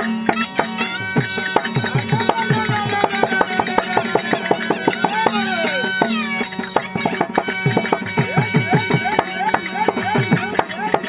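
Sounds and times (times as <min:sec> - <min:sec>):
fast hand-drum strokes: 0:00.0 - 0:11.0
sustained harmonium notes: 0:00.0 - 0:11.0.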